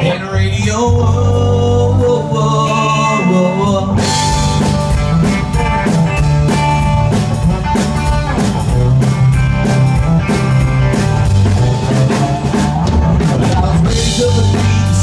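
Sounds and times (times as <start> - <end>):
drum kit steady beat: 0.0 - 15.0.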